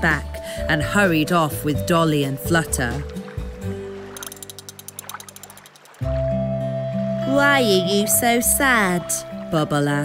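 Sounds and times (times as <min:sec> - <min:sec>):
rapid ratchet-like clicking: 0:04.2 - 0:06.0.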